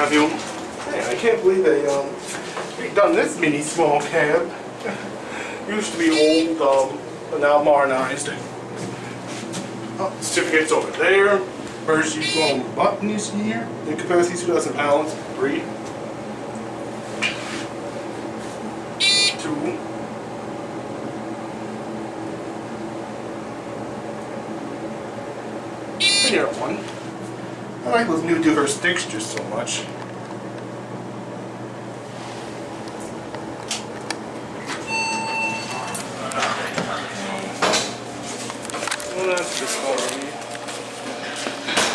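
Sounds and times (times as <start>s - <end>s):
elevator hum: 0.0s - 41.9s
electronic arrival beep: 12.2s - 12.6s, 19.0s - 19.4s, 26.0s - 26.4s, 34.8s - 36.0s
elevator doors opening: 34.6s - 37.1s.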